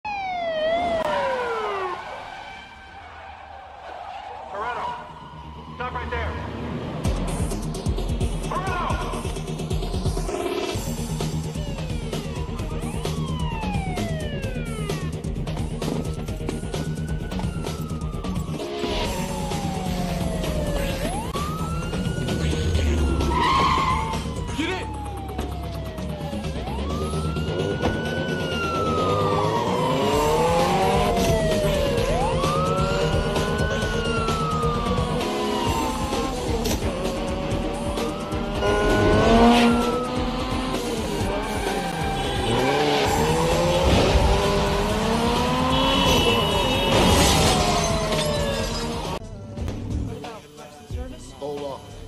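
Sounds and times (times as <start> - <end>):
siren winding down: 0.0 - 3.4, 10.1 - 49.2.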